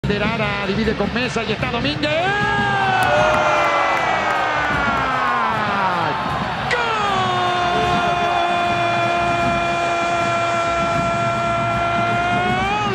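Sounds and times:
commentator screaming goal: 2.4 - 12.9.

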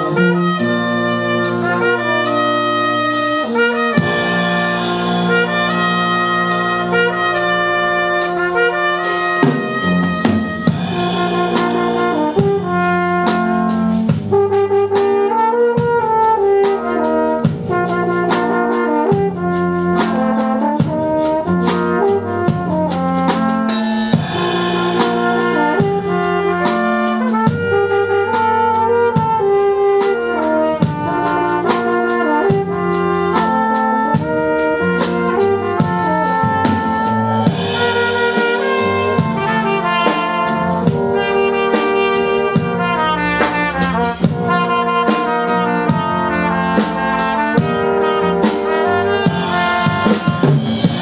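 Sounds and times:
brass quintet playing: 0.0 - 51.0
drum kit beat: 0.0 - 51.0.

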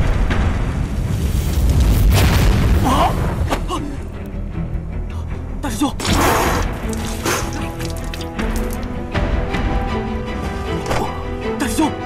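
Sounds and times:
deep rumbling explosion boom: 0.0 - 3.5.

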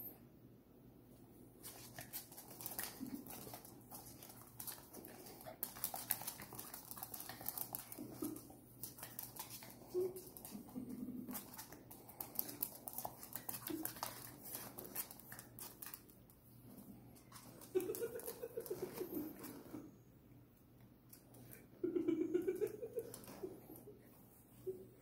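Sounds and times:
dog claws clicking on wood floor: 1.6 - 10.7, 11.3 - 16.4.

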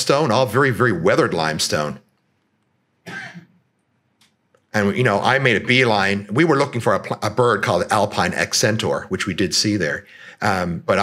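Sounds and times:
man clearing his throat: 3.1 - 3.6.

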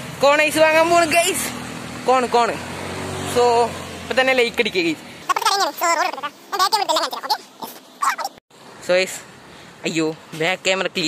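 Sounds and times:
vehicle engine humming: 0.0 - 9.8
young man talking: 0.2 - 2.7, 3.3 - 11.0.

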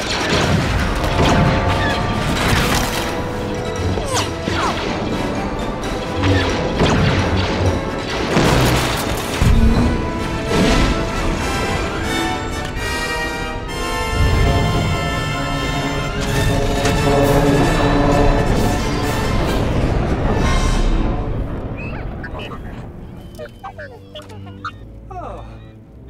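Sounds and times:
explosions and crashes: 0.0 - 11.9, 18.0 - 23.9
orchestral film score: 0.0 - 26.0.

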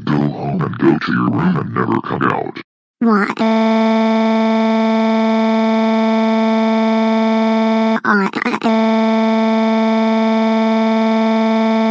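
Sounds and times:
synthetic voice wailing: 0.0 - 3.4.

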